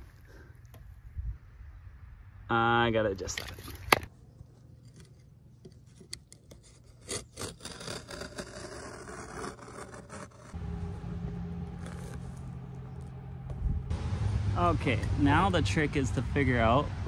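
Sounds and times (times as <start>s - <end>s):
utility knife cutting carpet: 4.9s - 10.6s, 11.6s - 13.1s
low steady hum: 10.5s - 17.0s.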